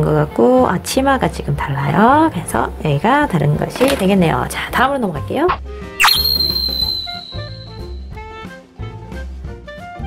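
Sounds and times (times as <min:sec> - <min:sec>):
light jazzy background music: 0:00.0 - 0:05.9, 0:08.3 - 0:10.0
high bright ringing tone: 0:06.0 - 0:08.1.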